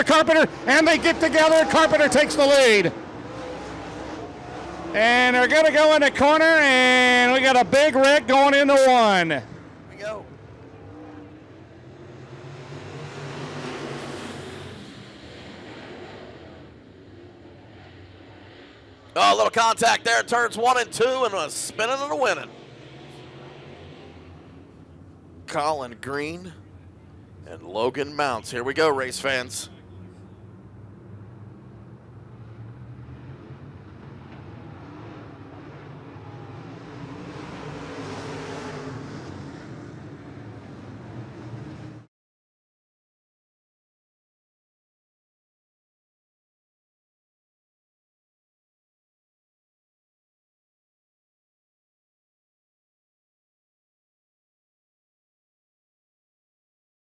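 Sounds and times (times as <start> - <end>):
race car engines passing: 0.0 - 42.1.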